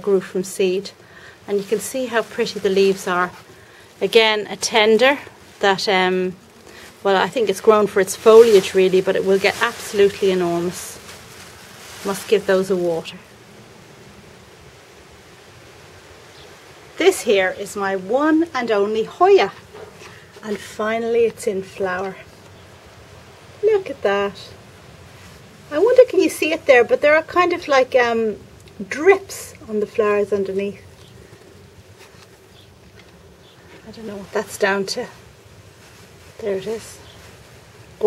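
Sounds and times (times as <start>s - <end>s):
steady background hiss: 0.0s - 38.0s.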